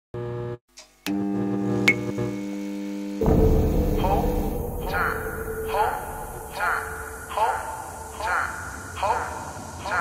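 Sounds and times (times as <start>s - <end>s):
neon sign buzzing hum: 0.2s - 9.0s
sharp ping: 3.2s - 9.0s
loud noisy low sound: 3.2s - 9.7s.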